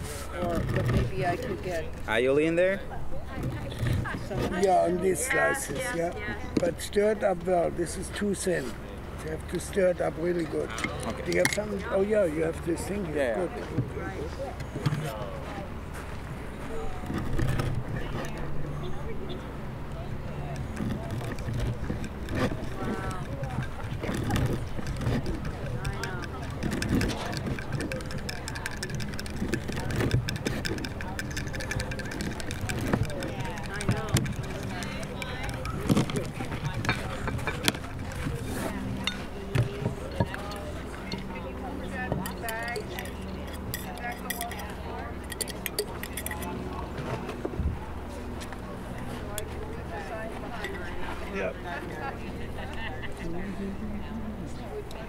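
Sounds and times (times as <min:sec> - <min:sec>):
people talking: 0:00.0 - 0:55.0
spoon stirring in glass jar: 0:21.3 - 0:41.2, 0:42.1 - 0:46.6.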